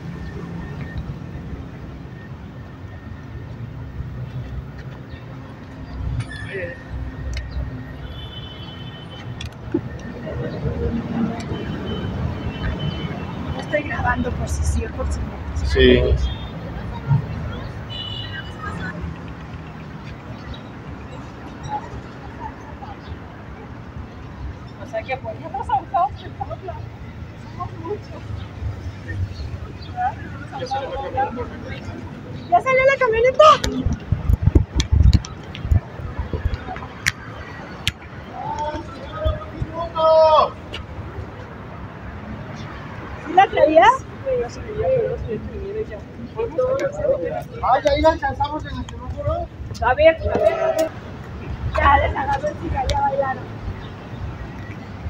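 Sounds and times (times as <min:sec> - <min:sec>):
city traffic rumble: 0:00.0 - 0:55.0
wind and handling thumps on microphone: 0:09.3 - 0:10.0, 0:33.6 - 0:38.1.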